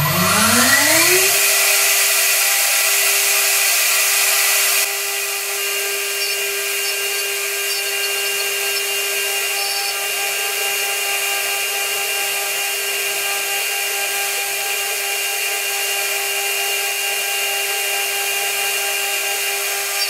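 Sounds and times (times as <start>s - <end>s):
cutter milling wood hiss: 0.0s - 20.0s
spindle motor high-pitched whine: 0.0s - 20.0s.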